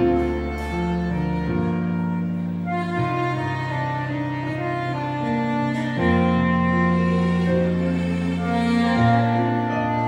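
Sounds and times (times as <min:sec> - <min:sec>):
backing track with strings: 0:00.0 - 0:10.0
low bass note: 0:00.0 - 0:10.0
soprano saxophone melody: 0:00.0 - 0:10.0.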